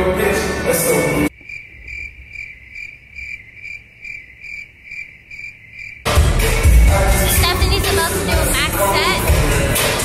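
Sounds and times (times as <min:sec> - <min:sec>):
crickets chirping: 0:01.3 - 0:06.2
loud music: 0:06.1 - 0:10.0.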